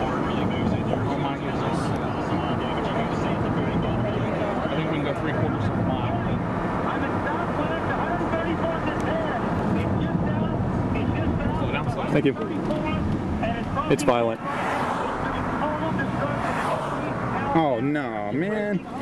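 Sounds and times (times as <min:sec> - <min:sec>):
road and wind noise inside car: 0:00.0 - 0:19.0.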